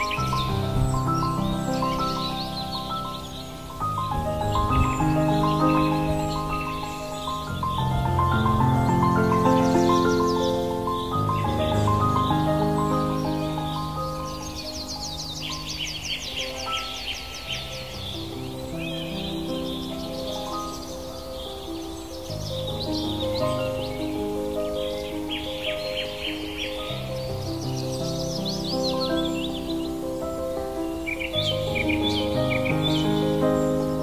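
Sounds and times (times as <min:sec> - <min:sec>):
birds singing trilled notes: 0:00.0 - 0:34.0
calm piano music: 0:00.0 - 0:34.0.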